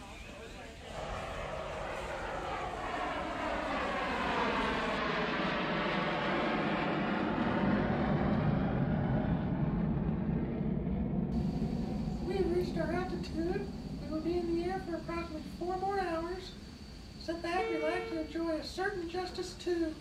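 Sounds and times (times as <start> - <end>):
jet engines roaring: 0.0 - 18.2.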